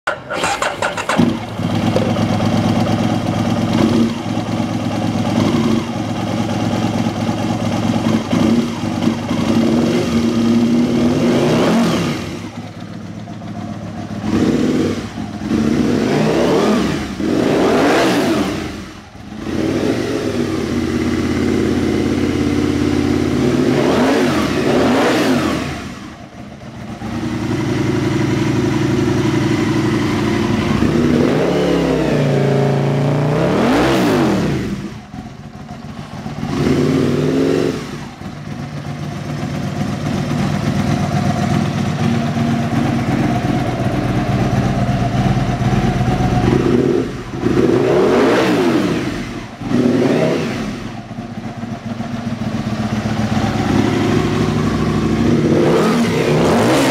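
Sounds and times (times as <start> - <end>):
motorcycle engine idling and revving: 0.0 - 56.9.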